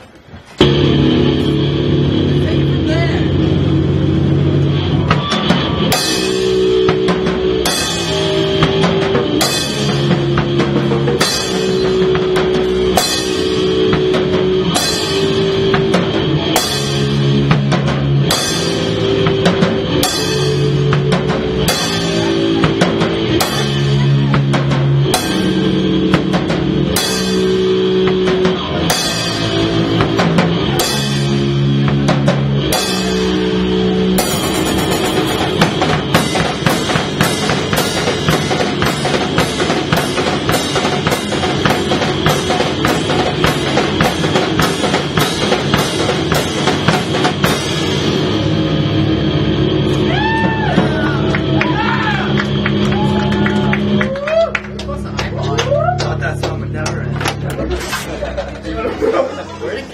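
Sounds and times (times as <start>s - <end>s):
punk band playing: 0.0s - 59.9s
cymbal crashes: 0.6s - 51.2s.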